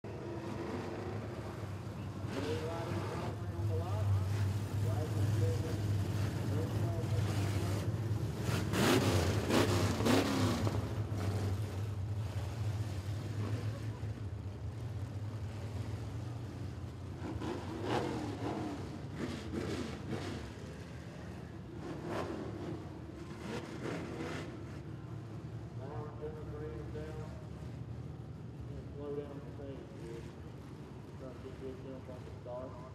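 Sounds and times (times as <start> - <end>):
race car engines droning: 0.0 - 32.9.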